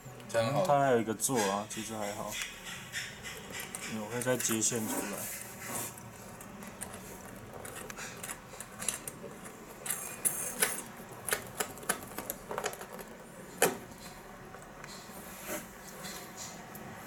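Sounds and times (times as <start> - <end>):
hands handling wires and connectors: 5.4 - 15.0.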